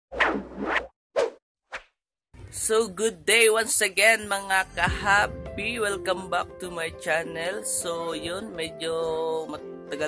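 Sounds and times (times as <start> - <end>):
swoosh sound effects: 4.7 - 6.6.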